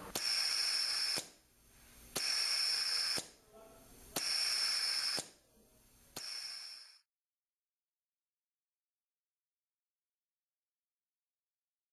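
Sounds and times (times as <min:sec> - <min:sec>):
compressed air hissing: 0:00.0 - 0:03.3, 0:04.1 - 0:05.3, 0:06.2 - 0:07.0.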